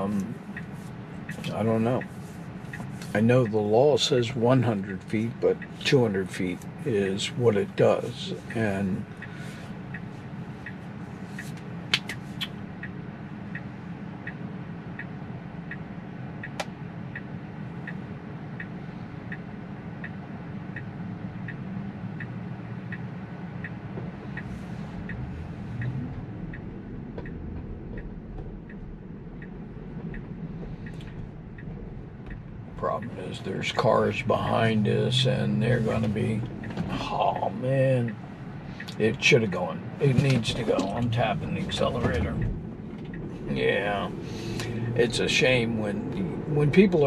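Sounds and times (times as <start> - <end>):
car cabin hum: 0.0 - 47.0
turn signal ticking: 0.0 - 47.0.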